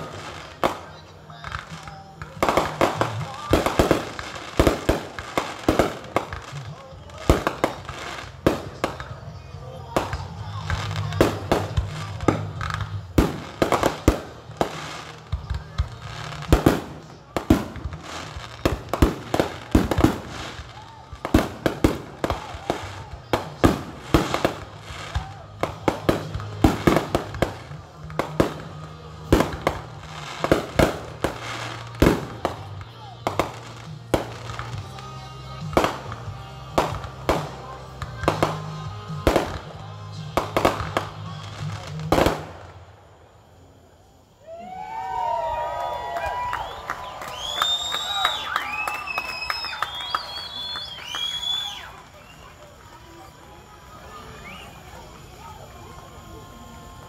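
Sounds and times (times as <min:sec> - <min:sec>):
fireworks bangs and crackles: 0:00.0 - 0:57.0.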